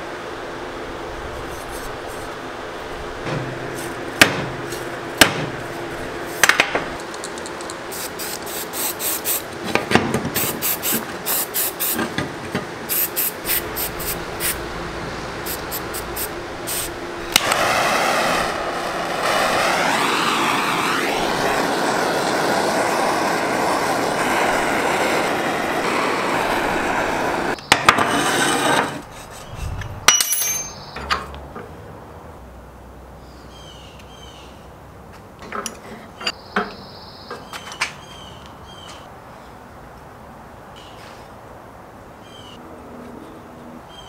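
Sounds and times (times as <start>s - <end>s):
torch flame hissing: 7.8s - 9.6s, 10.3s - 12.0s, 12.8s - 30.0s.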